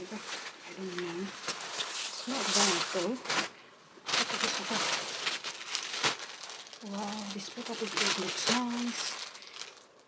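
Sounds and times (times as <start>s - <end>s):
paper crinkling and rustling: 0.0s - 3.5s, 4.1s - 10.0s
sharp paper crackle: 4.1s - 10.0s.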